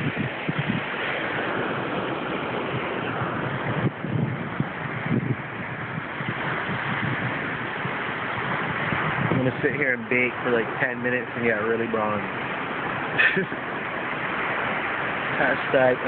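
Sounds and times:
surf washing onto beach: 0:00.0 - 0:16.0
wind buffeting microphone: 0:00.0 - 0:16.0.

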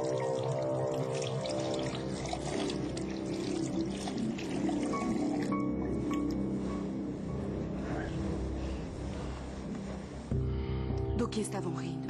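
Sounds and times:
background music with held chords: 0:00.0 - 0:12.0.

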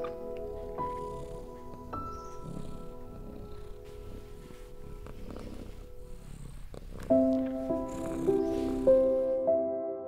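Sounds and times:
cat purring: 0:00.0 - 0:09.3
soft ambient music: 0:00.0 - 0:10.0.

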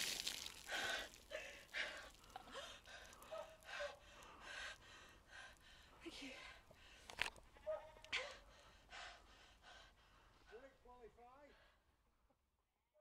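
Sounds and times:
woman gasping from cold: 0:00.5 - 0:06.6.

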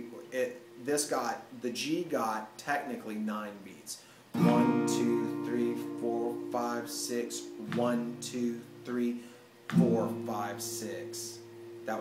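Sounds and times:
acoustic guitar strumming: 0:04.3 - 0:12.0.

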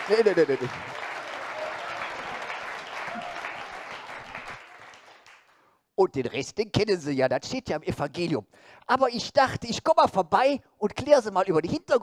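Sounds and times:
audience applauding: 0:00.0 - 0:05.6.

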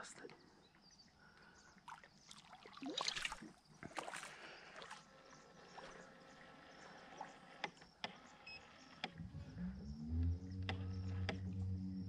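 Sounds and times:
faint clicks: 0:10.2 - 0:12.0.

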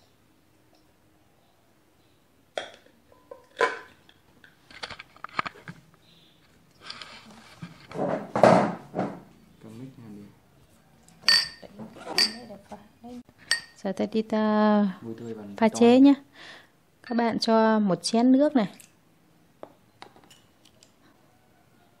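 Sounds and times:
ceramic bowls knocking and clinking: 0:02.5 - 0:04.0, 0:11.2 - 0:12.5, 0:13.4 - 0:13.8, 0:17.0 - 0:17.4.

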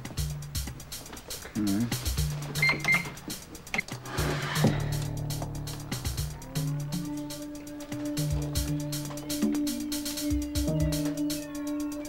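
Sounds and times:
background music: 0:00.0 - 0:12.0
cash register beeps: 0:02.6 - 0:03.1.

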